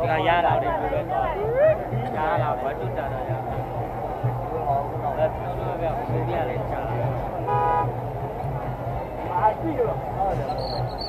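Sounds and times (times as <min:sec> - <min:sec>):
crowd chatter: 0:00.0 - 0:11.0
horn toot: 0:07.4 - 0:08.0.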